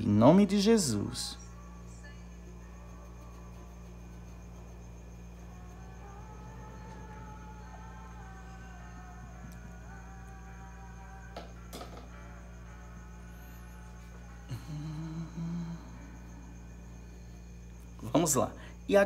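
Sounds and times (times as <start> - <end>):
faint background music: 0.0 - 19.0
steady electrical hum: 0.0 - 19.0
man humming low notes: 2.9 - 16.9.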